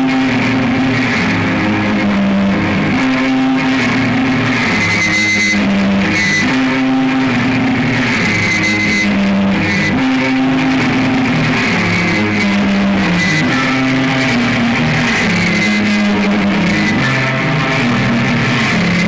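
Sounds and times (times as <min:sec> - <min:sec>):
electric guitar chords: 0:00.0 - 0:19.0.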